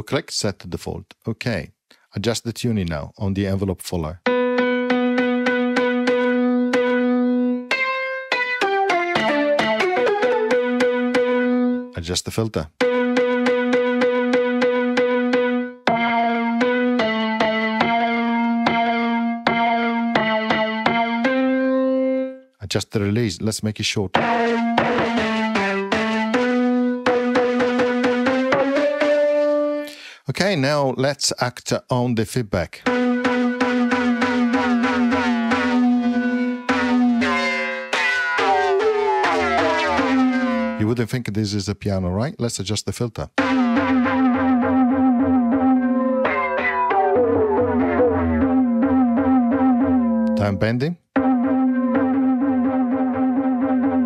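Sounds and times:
repeated piano notes: 0:04.2 - 0:12.0, 0:12.7 - 0:22.5, 0:24.1 - 0:30.1, 0:32.8 - 0:41.0, 0:43.3 - 0:54.0.

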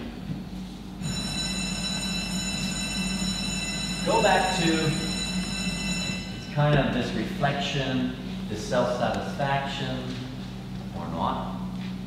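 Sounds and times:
low hum: 0:00.0 - 0:12.0
high-pitched steady whine: 0:00.8 - 0:11.7.

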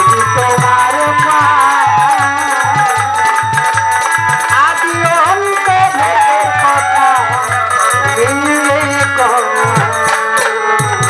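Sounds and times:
hand drum rhythm: 0:00.0 - 0:11.0
jingling percussion: 0:00.0 - 0:11.0
violin: 0:00.0 - 0:11.0
woman singing: 0:00.0 - 0:11.0.

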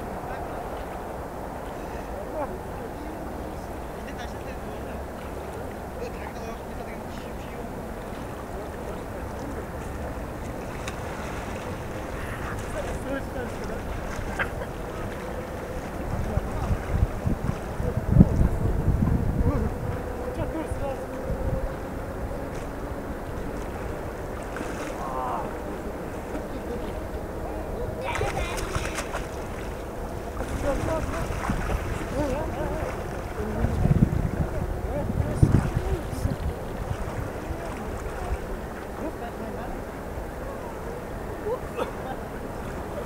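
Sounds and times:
faint distant voices: 0:00.0 - 0:43.0
water noise: 0:00.0 - 0:43.0
wind rumbling on microphone: 0:00.0 - 0:43.0.

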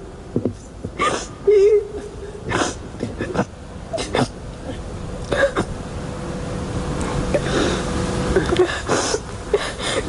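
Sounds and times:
high whimper: 0:01.0 - 0:05.7
woman crying: 0:01.0 - 0:05.7, 0:08.4 - 0:10.0.

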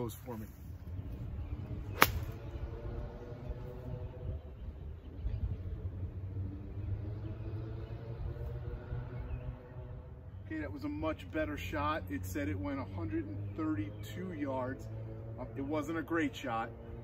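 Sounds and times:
golf club striking ball: 0:01.9 - 0:02.4.

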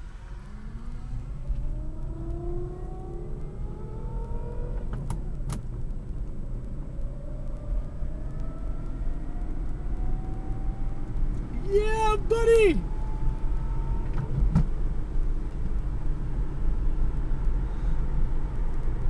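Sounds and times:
road and tyre rumble: 0:00.0 - 0:19.0.

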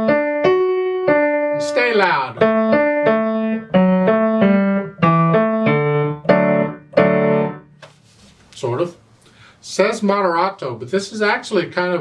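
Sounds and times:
grand piano melody: 0:00.0 - 0:07.8.

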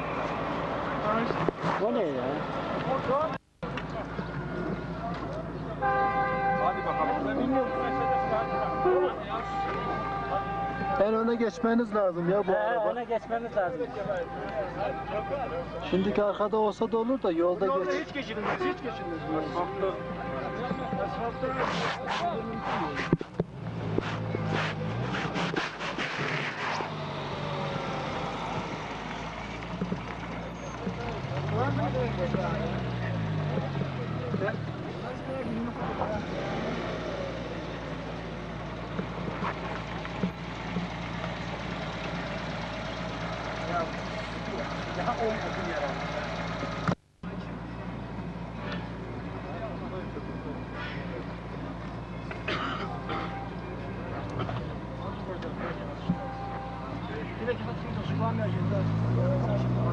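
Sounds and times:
car engines running: 0:00.0 - 0:59.9
indistinct chatter of people: 0:00.8 - 0:59.9.

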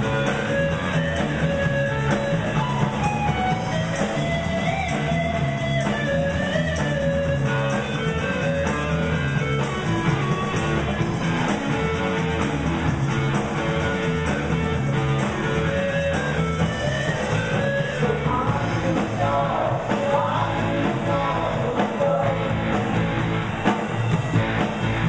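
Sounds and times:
electric guitar melody: 0:00.0 - 0:21.6
bass guitar: 0:00.0 - 0:25.0
steady drum beat: 0:00.0 - 0:25.0.

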